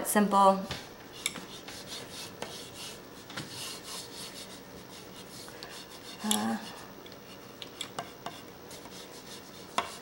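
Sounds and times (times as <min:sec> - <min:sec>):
oil pastel scraping on paper: 0:01.5 - 0:06.2, 0:08.2 - 0:10.0.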